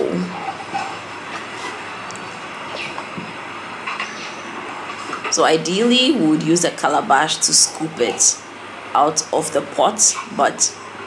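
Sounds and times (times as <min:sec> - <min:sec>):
steady rumbling: 0:00.0 - 0:11.0.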